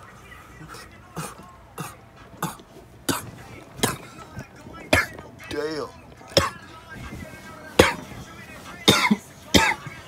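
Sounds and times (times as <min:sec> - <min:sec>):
man coughing: 0:01.1 - 0:05.2, 0:07.8 - 0:08.1, 0:08.8 - 0:10.0.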